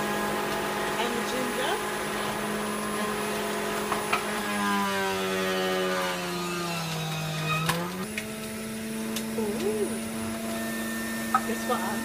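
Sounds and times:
juicer motor humming: 0.0s - 12.0s.

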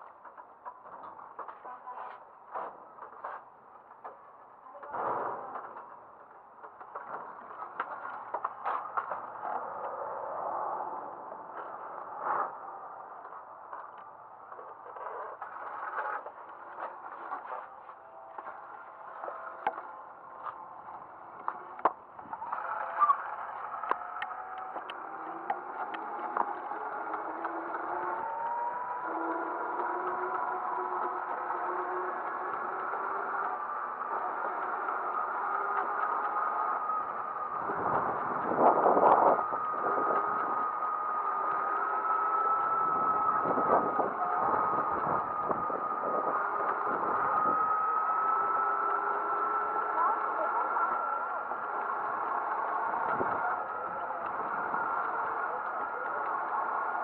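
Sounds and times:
scooter motor and wheel hum: 0.0s - 57.0s.

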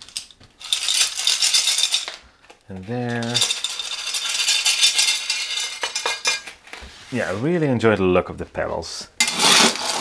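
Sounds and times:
pebbles rattling and clicking: 0.0s - 6.6s.

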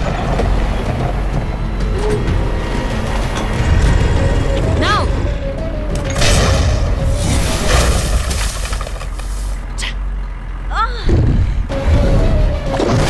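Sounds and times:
deep rumbling sound effects: 0.0s - 13.0s
dramatic music score: 0.0s - 13.0s.

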